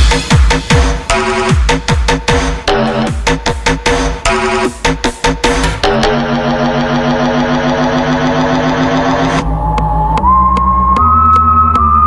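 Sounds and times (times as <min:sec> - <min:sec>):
buzzing synth chord: 0:05.5 - 0:09.4
deep bass note: 0:05.5 - 0:11.6.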